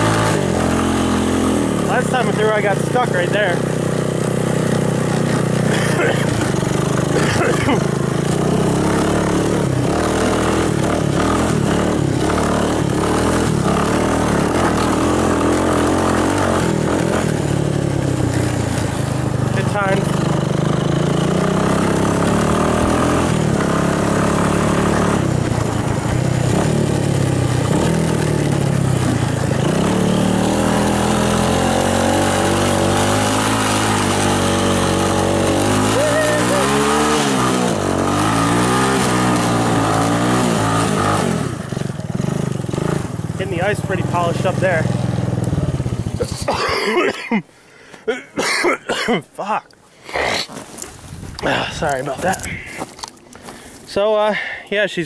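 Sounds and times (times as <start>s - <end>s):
single-cylinder engine revving: 0.0s - 47.0s.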